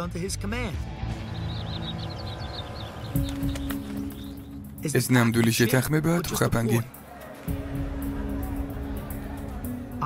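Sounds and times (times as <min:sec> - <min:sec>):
low background music drone: 0:00.0 - 0:10.0
small birds twittering: 0:01.0 - 0:05.1.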